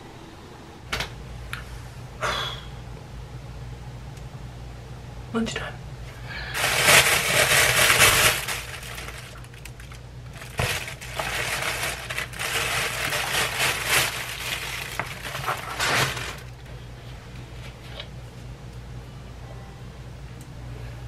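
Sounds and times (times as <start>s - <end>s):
plastic and paper bags crinkling: 6.5s - 16.7s.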